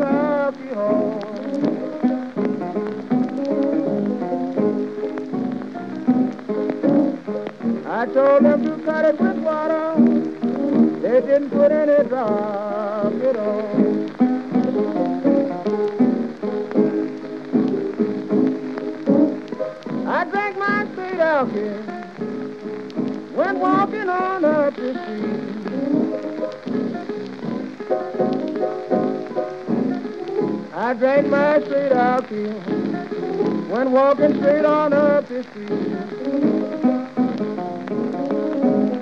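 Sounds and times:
piano and guitar blues: 0.0 - 39.0
record crackle and hiss: 0.0 - 39.0.

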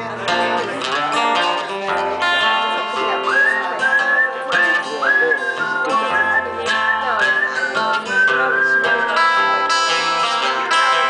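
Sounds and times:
strumming acoustic guitar: 0.0 - 11.0
man whistling a melody: 3.2 - 10.5.

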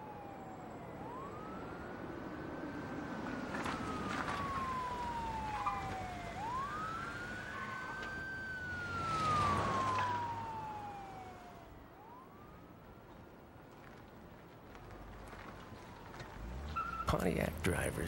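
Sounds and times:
emergency vehicle siren wailing: 0.0 - 13.1, 15.2 - 18.0
car passing: 1.0 - 12.4, 14.8 - 18.0.

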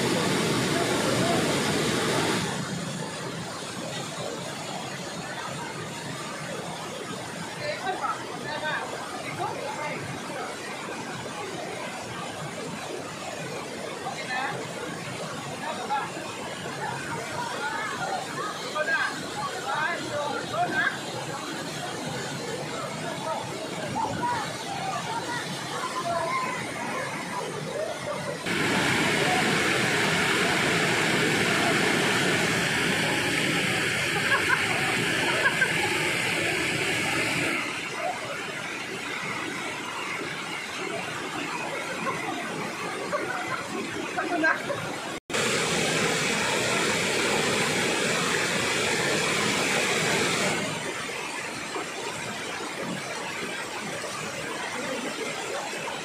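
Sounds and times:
waterfall rushing over rock: 0.0 - 56.0.

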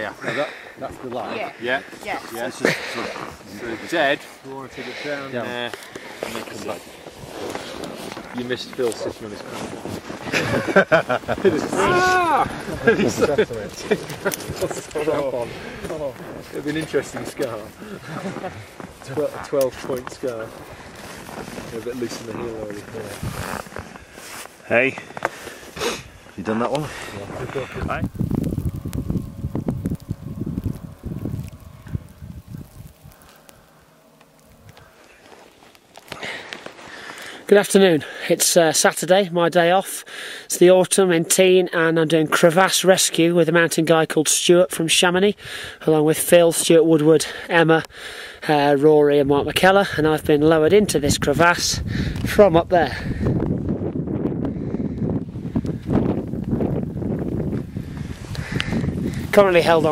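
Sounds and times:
wind buffeting microphone: 2.5 - 24.2, 25.0 - 35.0, 49.2 - 59.9.

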